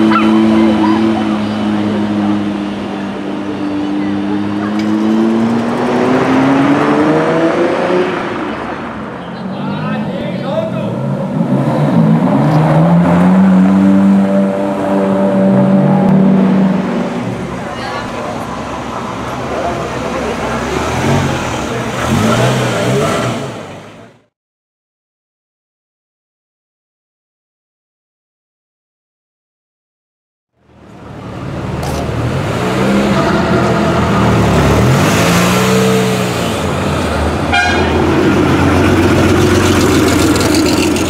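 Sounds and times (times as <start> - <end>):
crowd voices: 0.0 - 6.7, 7.6 - 12.8, 14.6 - 24.3
sports cars accelerating: 0.0 - 24.2, 30.9 - 41.0.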